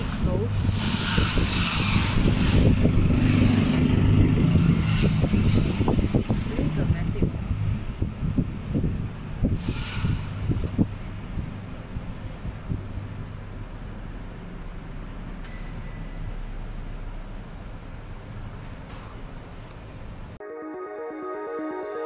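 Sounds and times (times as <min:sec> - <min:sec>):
wind buffeting microphone: 0:00.0 - 0:13.2
carpark low rumble: 0:00.0 - 0:20.4.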